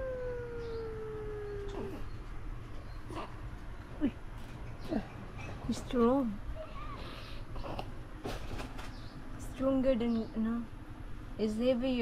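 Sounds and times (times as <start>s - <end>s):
baby crying: 0.0s - 2.0s.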